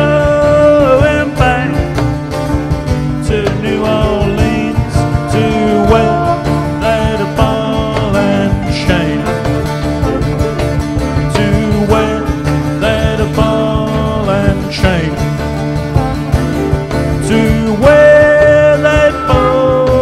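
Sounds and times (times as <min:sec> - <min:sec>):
harmonica melody with bent notes: 0:00.0 - 0:20.0
plucked strings: 0:00.0 - 0:20.0
upright bass: 0:00.0 - 0:20.0.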